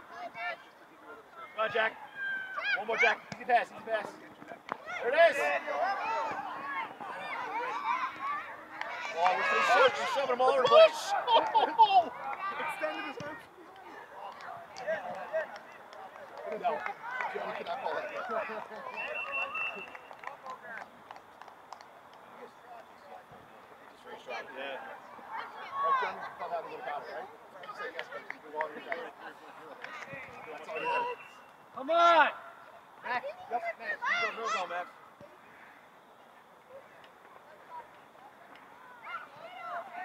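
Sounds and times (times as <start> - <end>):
spectators shouting: 4.8 - 13.2.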